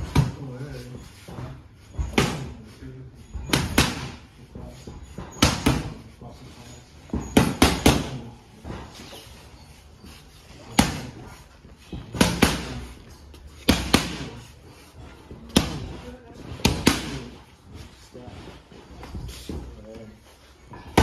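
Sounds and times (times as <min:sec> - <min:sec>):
boxing gloves smacking mitts: 0:03.4 - 0:04.3, 0:05.1 - 0:06.0, 0:07.1 - 0:09.1, 0:10.5 - 0:14.5, 0:15.2 - 0:17.4.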